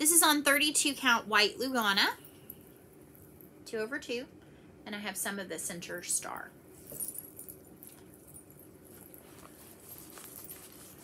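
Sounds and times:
fabric and bag rustling: 6.7 - 11.0.

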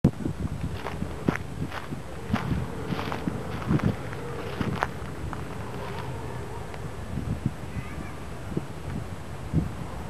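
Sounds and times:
faint steady hum: 0.1 - 10.0
footsteps on gravel: 0.6 - 6.2.

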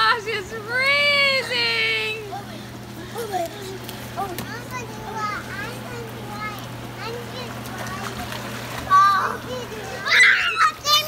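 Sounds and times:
hot tub jets humming: 0.0 - 11.0
children squealing and shrieking: 8.9 - 11.0.

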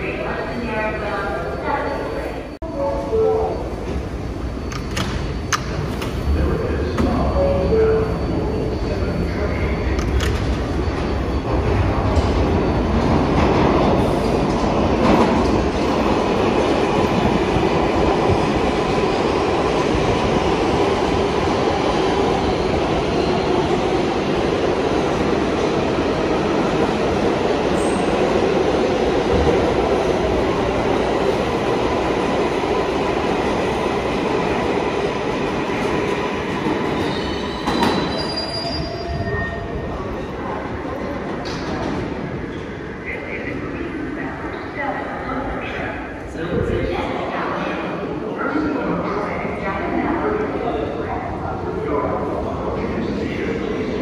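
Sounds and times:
subway train wheels rumbling on rail: 0.0 - 54.0.

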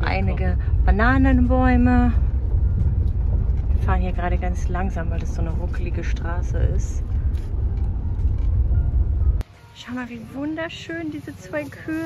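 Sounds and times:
car driving on bumpy road: 0.0 - 9.4.

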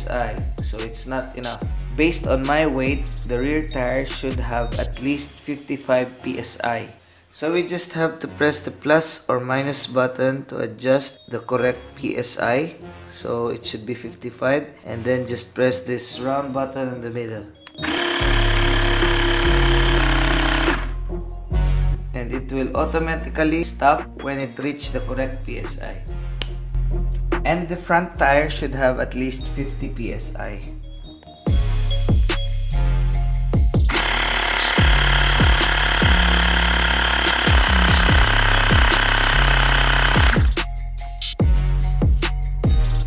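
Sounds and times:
music with kick drum beat: 0.0 - 5.0, 31.5 - 43.0
air compressor buzzing: 17.8 - 21.0, 33.8 - 40.7.

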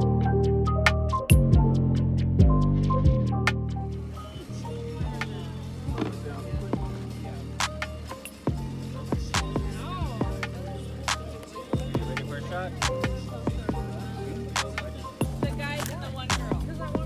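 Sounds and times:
deep sustained bass notes: 0.0 - 11.2, 11.8 - 17.0.

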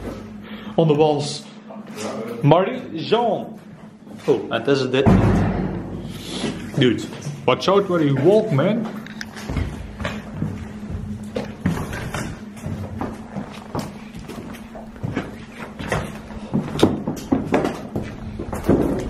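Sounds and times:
footsteps over debris and boards: 8.0 - 19.0.

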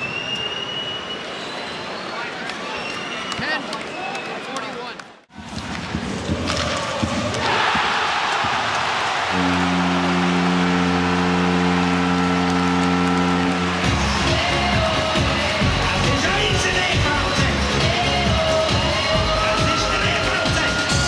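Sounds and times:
arena crowd roaring: 6.2 - 21.0
goal horn: 9.2 - 15.2
music with heavy beat: 13.8 - 21.0.

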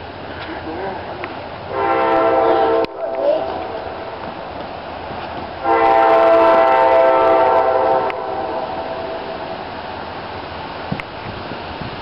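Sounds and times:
steady background noise: 0.0 - 12.0
train horn blast: 1.7 - 4.2, 5.6 - 9.7.

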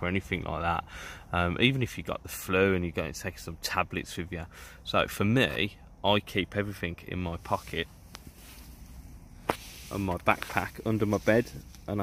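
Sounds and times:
faint rustle: 7.3 - 12.0.

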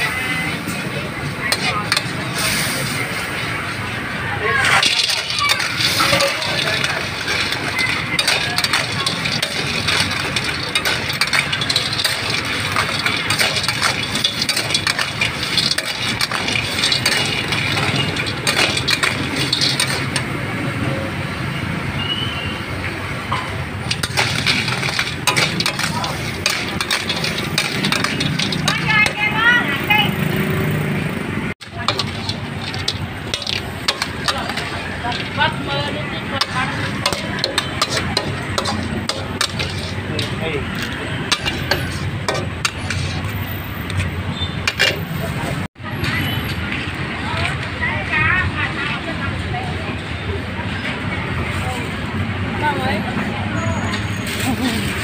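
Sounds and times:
voices in background: 0.0 - 21.3, 44.8 - 55.0.

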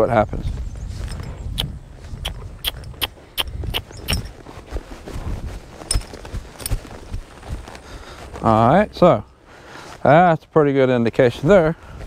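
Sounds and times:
rustle: 0.0 - 12.0
hoof thuds: 0.6 - 8.5
metal tack clinking: 5.9 - 6.8.

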